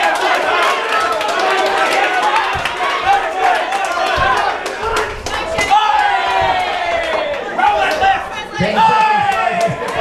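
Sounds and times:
spectators shouting and yelling: 0.0s - 10.0s.

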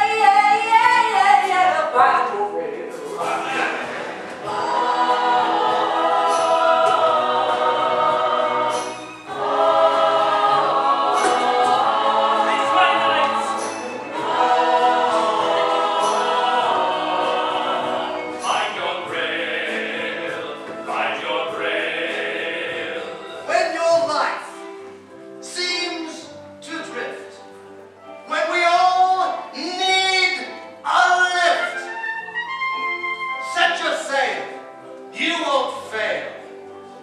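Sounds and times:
pit orchestra accompaniment: 3.0s - 36.7s
ensemble chorus singing: 3.2s - 23.5s.

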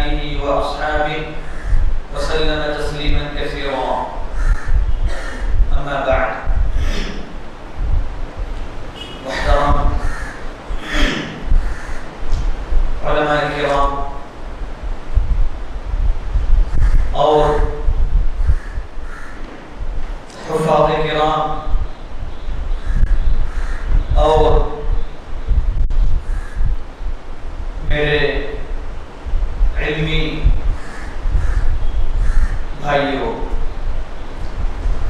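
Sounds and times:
man speaking: 0.0s - 1.4s, 2.1s - 4.3s, 5.1s - 7.4s, 9.0s - 10.1s, 10.7s - 11.5s, 13.0s - 14.3s, 17.2s - 17.9s, 20.3s - 21.8s, 24.2s - 24.9s, 27.8s - 28.7s, 29.8s - 30.6s, 32.8s - 33.6s
steady low rumble: 0.0s - 35.0s
wind buffeting microphone: 0.0s - 35.0s
crows cawing faintly: 1.4s - 2.1s, 4.2s - 5.7s, 9.0s - 12.3s, 16.7s - 17.7s, 18.4s - 19.9s, 22.7s - 24.2s, 26.2s - 26.8s, 30.7s - 32.8s.

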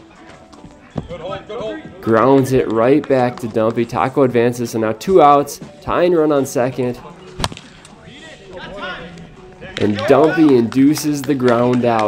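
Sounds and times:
players calling out: 6.7s - 12.0s.

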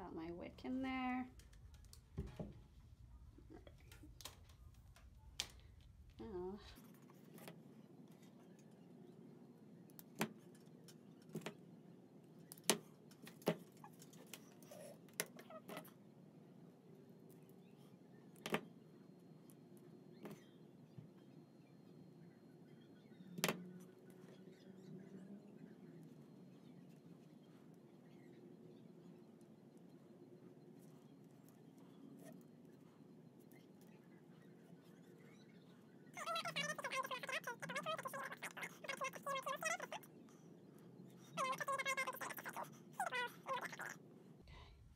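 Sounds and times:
faint rustling of wires: 0.0s - 44.9s.

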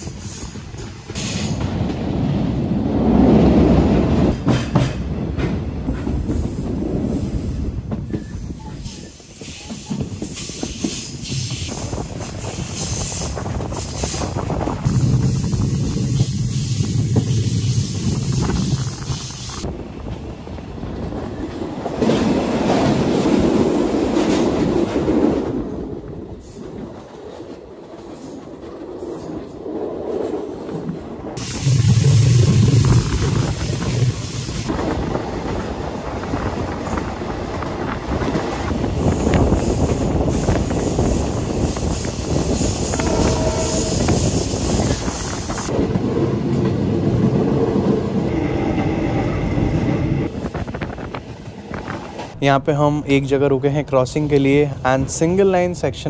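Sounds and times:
wind noise: 0.0s - 54.0s
train wheels rumbling on rails: 0.0s - 56.0s.

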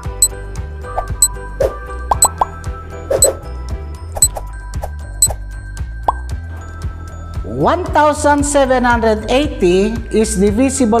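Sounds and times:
upbeat timer music with ticks: 0.0s - 0.4s, 1.0s - 1.4s, 2.1s - 2.6s, 3.2s - 3.4s, 4.2s - 4.4s, 5.1s - 6.4s
cartoonish plop effects: 2.1s - 2.6s.

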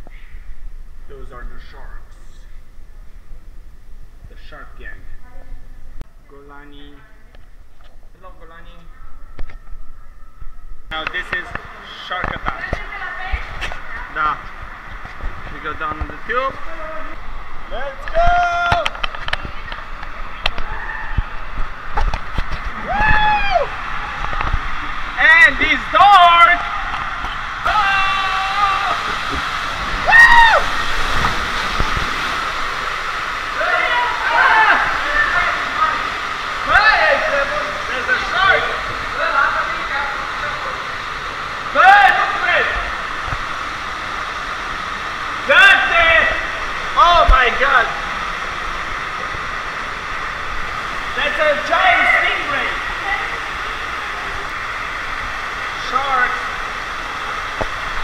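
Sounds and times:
water rushing down a slide: 10.9s - 58.0s
person yelling and whooping: 27.6s - 29.1s, 30.0s - 30.7s.

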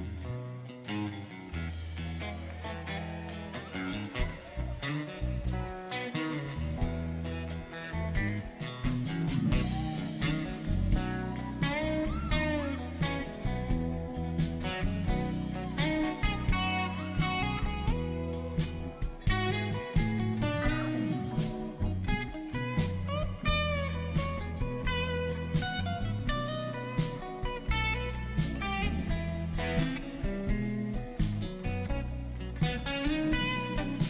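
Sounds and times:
drum kit: 0.0s - 34.0s
electric bass: 0.0s - 34.0s
electric guitar lead: 0.0s - 34.0s.

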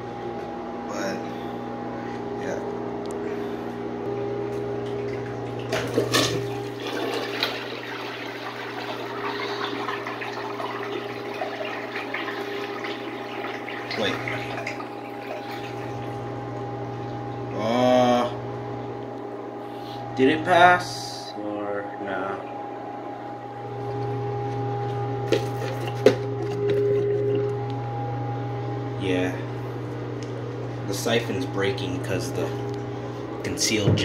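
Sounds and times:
toilet flushing water: 4.8s - 17.6s
water gurgling: 4.8s - 18.3s.

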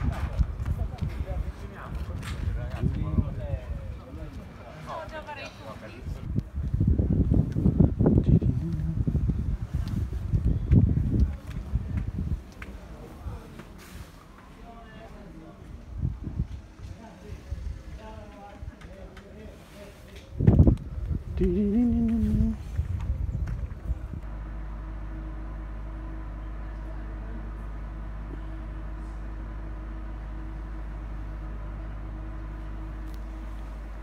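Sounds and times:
wind buffeting microphone: 0.0s - 4.5s, 6.0s - 12.8s, 15.8s - 19.0s, 20.2s - 24.3s
steady low hum: 0.0s - 13.5s, 20.4s - 34.0s
footsteps on pavement: 6.3s - 14.6s
person laughing: 8.5s - 9.2s.

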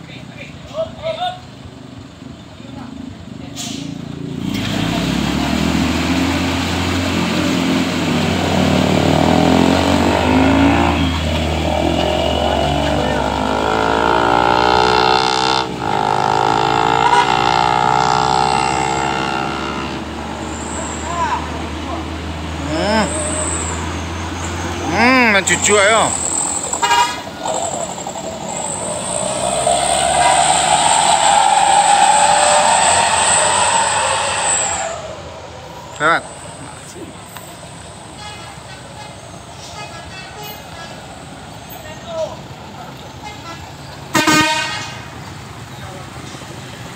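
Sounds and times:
truck diesel engine pulling hard: 0.0s - 46.9s
horn toots: 9.2s - 21.5s, 24.8s - 27.8s, 28.7s - 35.5s, 38.0s - 41.1s, 43.2s - 45.2s.

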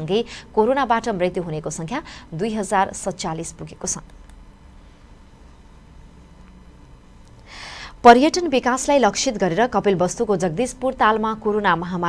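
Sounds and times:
woman speaking: 0.0s - 4.1s, 8.0s - 12.0s
background hiss: 0.0s - 10.5s.

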